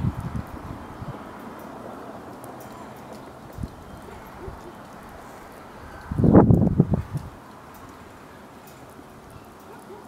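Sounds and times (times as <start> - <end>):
breeze rumbling on microphone: 0.0 - 1.3, 3.6 - 7.5.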